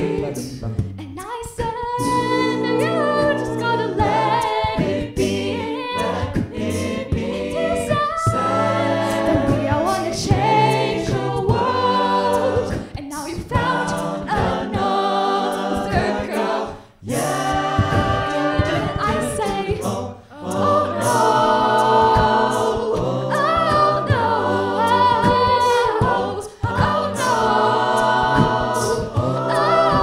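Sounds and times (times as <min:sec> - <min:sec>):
beatboxed vocal percussion: 0:00.0 - 0:30.0
sung backing harmonies: 0:00.0 - 0:30.0
woman singing lead: 0:01.0 - 0:11.7, 0:17.2 - 0:21.4.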